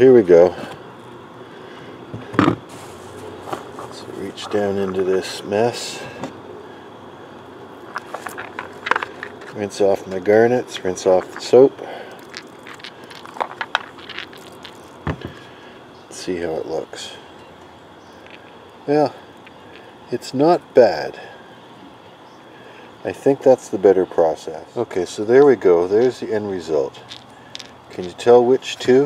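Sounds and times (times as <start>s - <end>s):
handling rock tumbler barrel: 2.2s - 6.4s, 7.8s - 15.5s, 26.9s - 29.0s.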